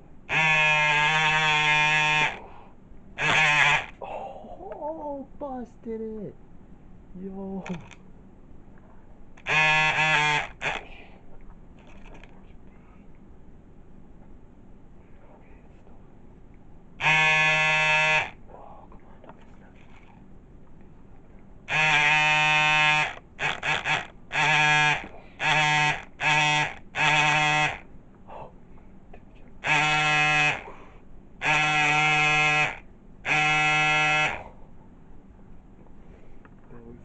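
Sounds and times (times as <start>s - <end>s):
horn blasts: 0.3s - 2.4s, 17.0s - 18.3s, 29.6s - 30.6s, 31.4s - 34.4s.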